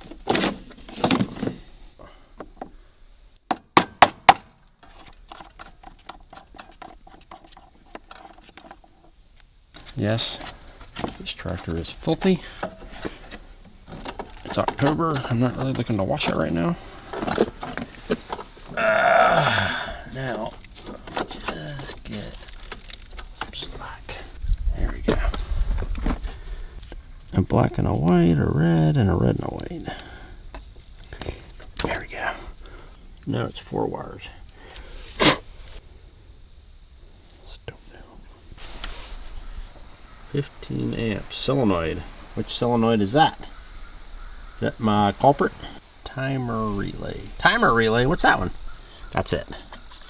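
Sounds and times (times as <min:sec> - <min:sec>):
wiring harness clicks and rustles: 0:04.8 - 0:18.6, 0:20.1 - 0:23.8.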